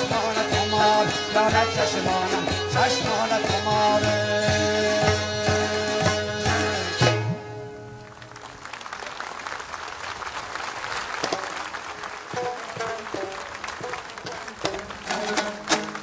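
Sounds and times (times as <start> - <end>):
audience applause: 8.0 - 16.0
plucked lutes: 12.3 - 16.0.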